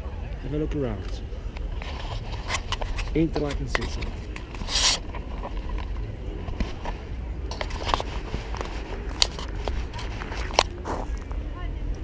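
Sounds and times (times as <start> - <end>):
camera handling scrapes and clicks: 1.7 - 11.3.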